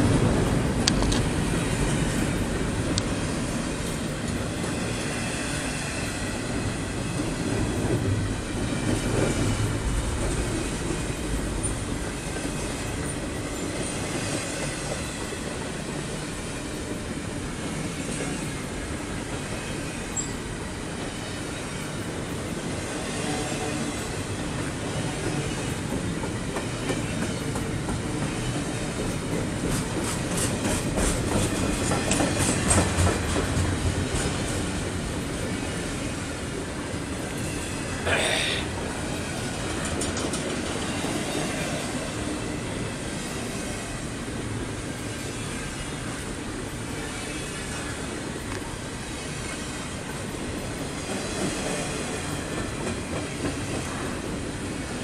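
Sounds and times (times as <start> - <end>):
steel wheels rumbling on rails: 0.0 - 55.0.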